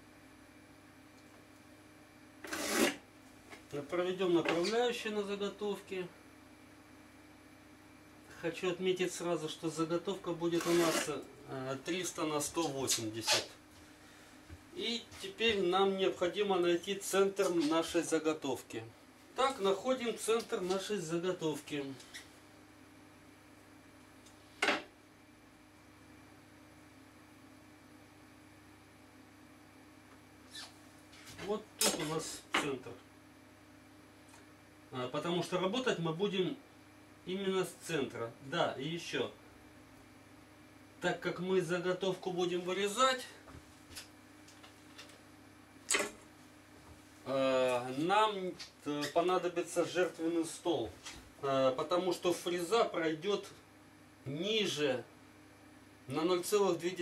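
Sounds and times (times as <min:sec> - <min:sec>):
steady low hum: 0:00.0 - 0:57.0
pen scraping along metal ruler: 0:02.4 - 0:03.0, 0:10.6 - 0:11.1.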